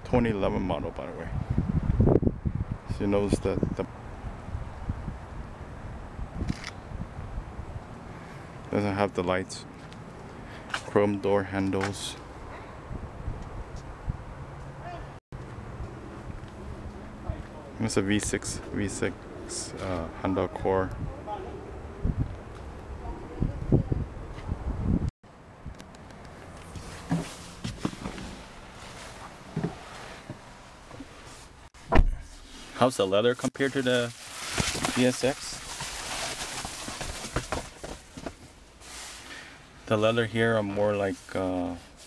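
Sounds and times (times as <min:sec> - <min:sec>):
low wind rumble on microphone: 0:00.1 - 0:08.3, 0:12.3 - 0:14.6, 0:20.8 - 0:25.8
camera handling noise: 0:06.4 - 0:06.8.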